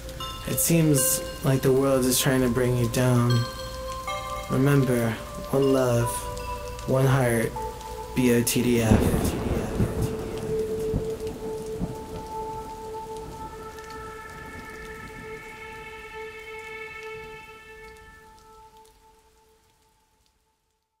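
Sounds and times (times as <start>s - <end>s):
long held note: 0.0s - 19.4s
rain and falling drops: 0.0s - 21.0s.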